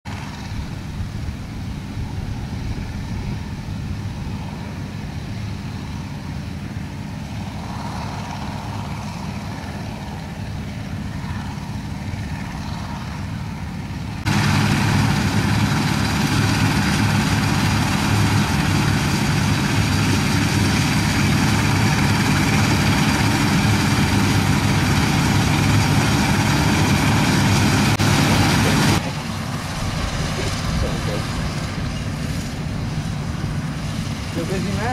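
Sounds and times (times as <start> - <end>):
combine harvester engine drone: 0.1 - 34.9
machinery clatter: 14.2 - 34.9.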